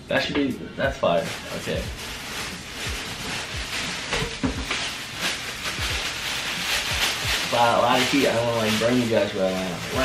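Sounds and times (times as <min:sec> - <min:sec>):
plastic and tissue paper crinkling: 0:00.9 - 0:10.0.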